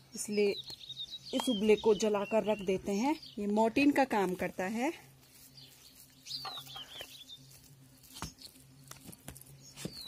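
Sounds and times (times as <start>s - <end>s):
steady low hum: 0.0s - 10.0s
bird chirping: 0.1s - 4.0s, 5.4s - 10.0s.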